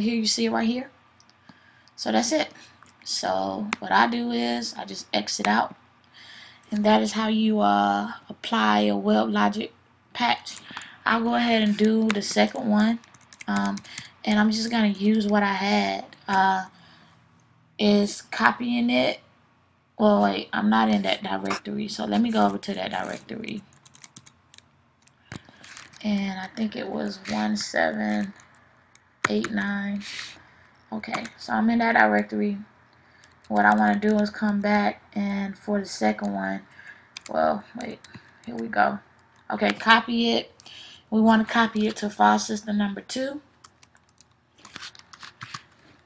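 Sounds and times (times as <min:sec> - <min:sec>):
typing on computer keyboard: 0:11.7 - 0:14.1, 0:22.4 - 0:26.0, 0:43.6 - 0:45.7.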